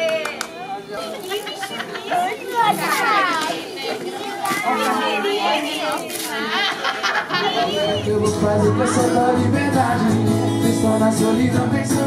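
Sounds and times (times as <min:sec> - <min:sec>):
children chattering excitedly: 0:00.0 - 0:12.0.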